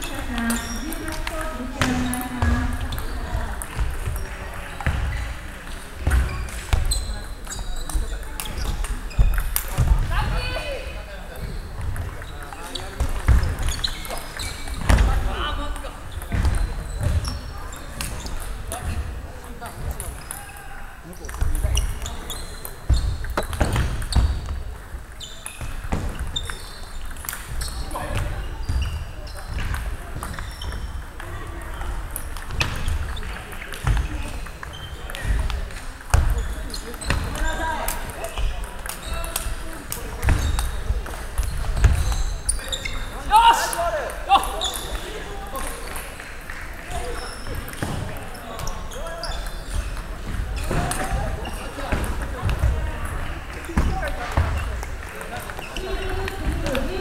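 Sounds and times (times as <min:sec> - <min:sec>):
table tennis ball hitting paddles: 0:11.4 - 0:19.0, 0:21.2 - 0:42.2
ball bouncing on table: 0:15.7 - 0:17.4.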